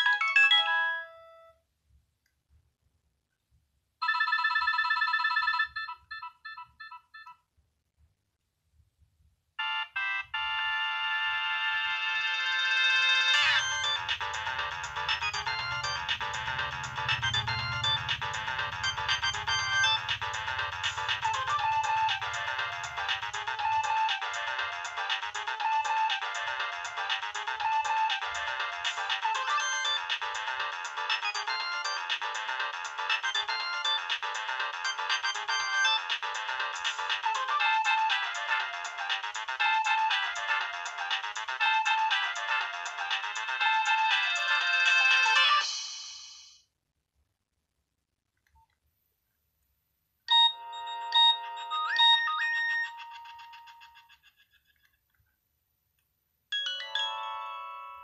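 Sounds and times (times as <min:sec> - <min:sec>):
polyphonic ringtone melody: 0:00.0 - 0:01.6, 0:12.2 - 0:45.8, 0:50.3 - 0:54.4, 0:56.5 - 0:58.0.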